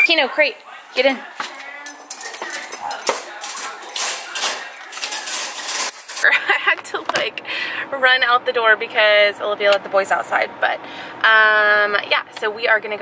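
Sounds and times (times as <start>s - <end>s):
wire dog crate rattling: 1.5s - 6.2s
sharp metallic clatters: 1.9s - 6.3s.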